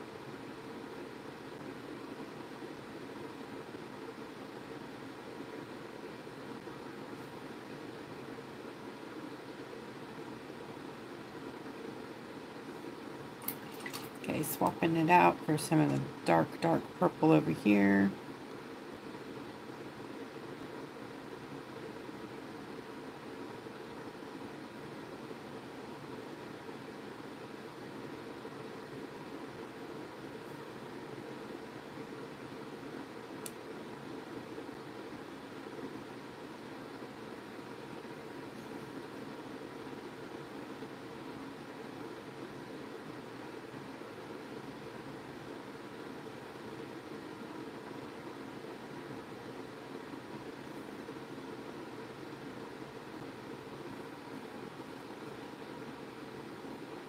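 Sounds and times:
faint hum: 0.0s - 57.0s
faint click: 33.4s - 33.6s.

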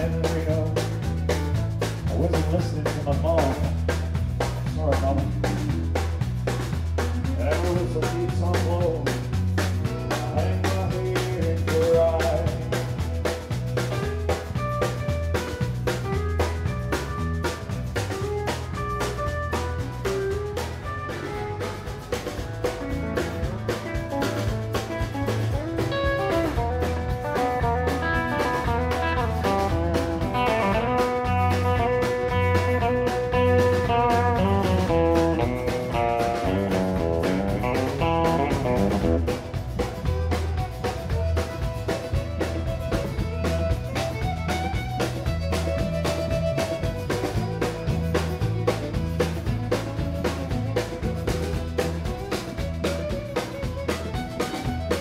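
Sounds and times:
country band playing: 0.0s - 55.0s.

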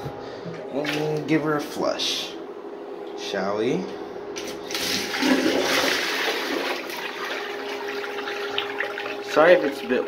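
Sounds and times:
toilet flushing: 4.6s - 10.0s.

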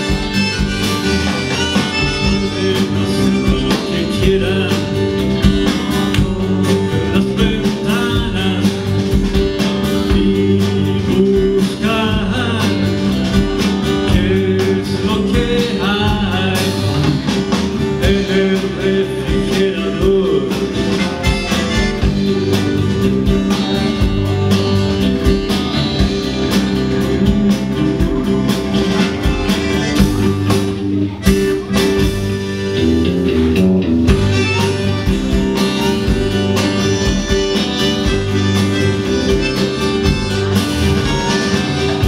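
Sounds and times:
acoustic guitar: 0.0s - 42.0s
drum kit: 0.0s - 42.0s
electric bass line: 0.0s - 42.0s
electric guitar: 0.0s - 42.0s.

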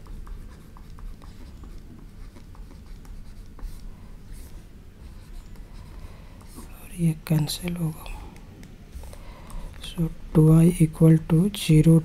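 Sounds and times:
stylus scratching on tablet: 0.0s - 7.2s
low steady hum: 0.0s - 12.0s.

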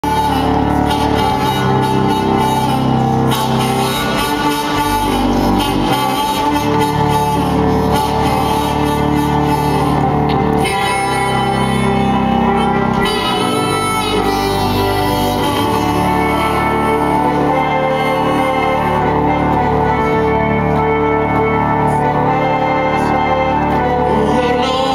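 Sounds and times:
organ chords: 0.0s - 24.9s.

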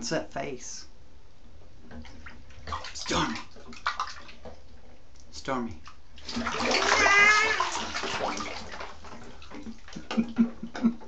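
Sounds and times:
water hissing in bathtub: 6.2s - 9.5s.

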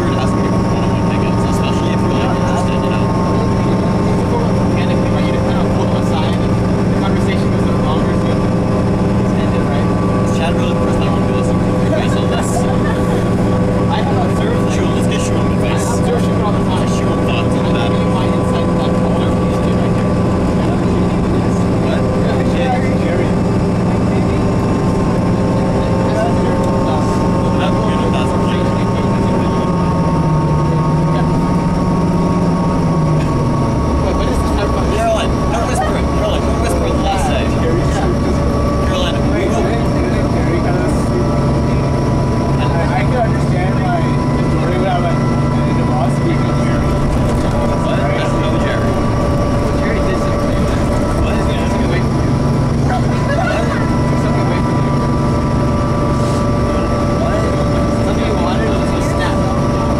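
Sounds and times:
bus engine drone: 0.0s - 59.9s
constant whine: 0.0s - 59.9s.

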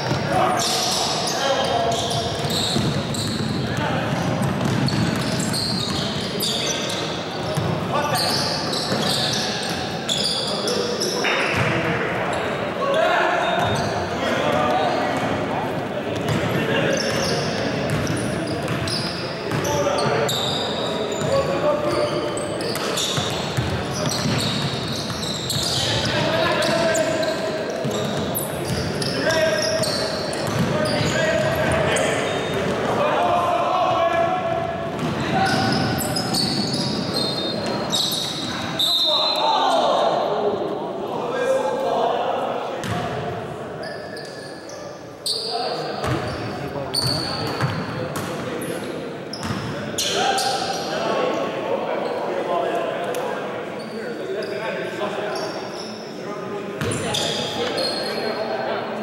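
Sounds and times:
players shouting: 30.8s - 34.6s.

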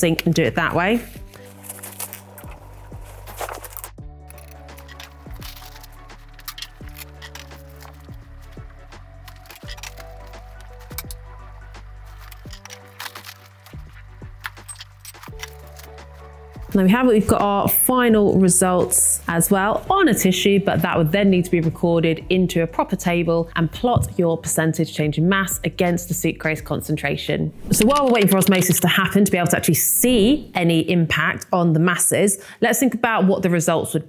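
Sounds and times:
background music with bass line: 0.0s - 24.2s.

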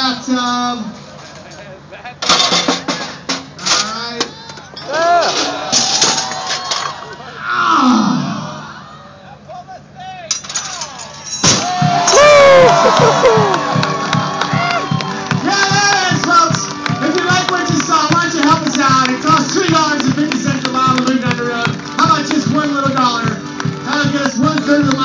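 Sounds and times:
machine clanking and knocking: 1.0s - 4.0s
crowd cheering: 4.8s - 7.5s, 11.5s - 25.0s
crowd calling out: 11.5s - 20.1s.

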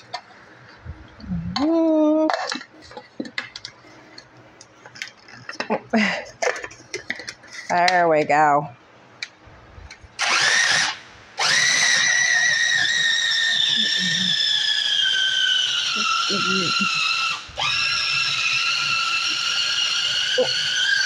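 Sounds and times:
food processor motor whining: 10.2s - 21.0s.

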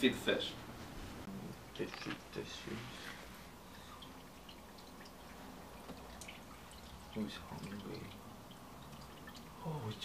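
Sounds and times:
water trickling and dripping: 1.5s - 10.0s.

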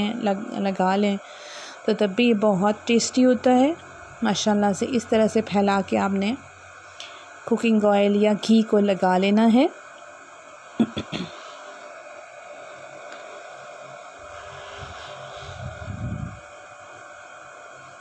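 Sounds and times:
flatbread hissing on hot griddle: 14.2s - 15.8s.

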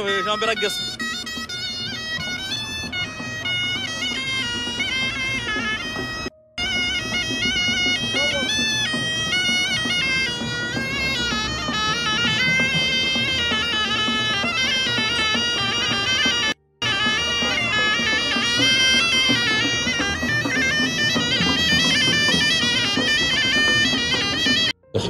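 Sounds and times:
pipe playing winding melody: 0.0s - 25.0s.

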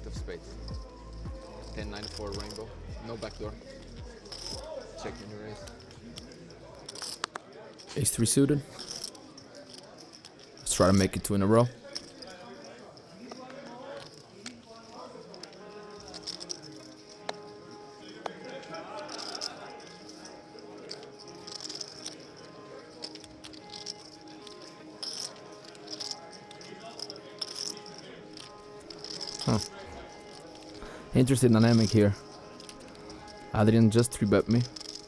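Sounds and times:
murmur of a busy room: 0.0s - 35.0s
soft background music: 0.0s - 35.0s
poker chips clicking: 1.0s - 35.0s.

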